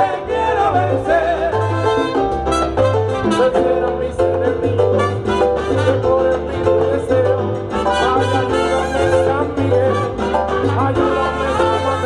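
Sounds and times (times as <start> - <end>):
live salsa band playing: 0.0 - 12.0.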